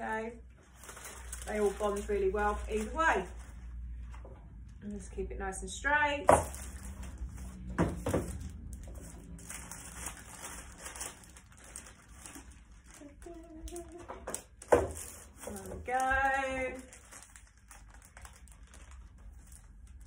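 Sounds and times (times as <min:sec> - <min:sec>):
foil and paper crinkling: 0:00.6 - 0:03.9, 0:06.4 - 0:20.0.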